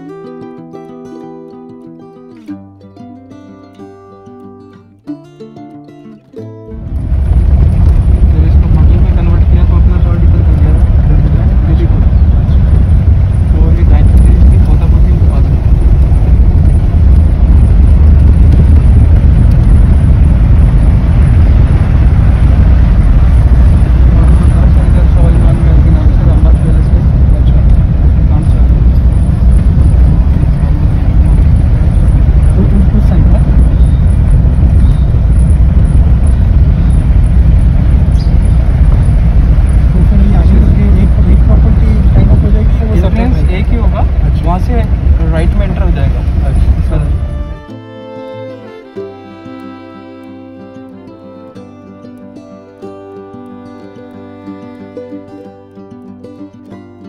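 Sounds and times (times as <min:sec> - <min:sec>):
road and engine rumble inside car: 0:06.9 - 0:47.4.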